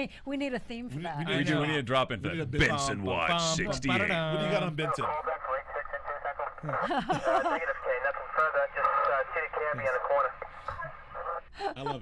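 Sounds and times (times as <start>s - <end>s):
person talking through telephone filter: 3.8s - 6.8s, 7.6s - 11.5s.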